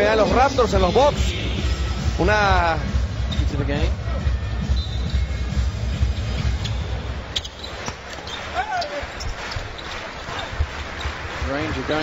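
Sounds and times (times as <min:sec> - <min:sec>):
arena crowd noise: 0:00.0 - 0:12.0
music with thumping beat: 0:00.6 - 0:07.1
sneaker squeak: 0:03.3 - 0:03.6, 0:04.6 - 0:10.5
basketball bouncing on court: 0:07.3 - 0:08.4.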